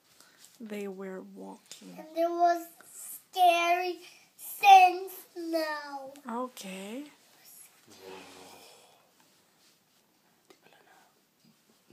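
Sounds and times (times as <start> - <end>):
soft breathy rustle: 0.0 - 0.6.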